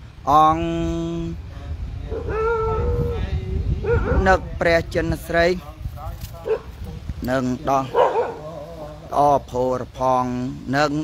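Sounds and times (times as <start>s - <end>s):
man speaking: 0.3s - 11.0s
dog barking: 3.8s - 4.2s, 6.4s - 7.0s, 7.9s - 8.9s.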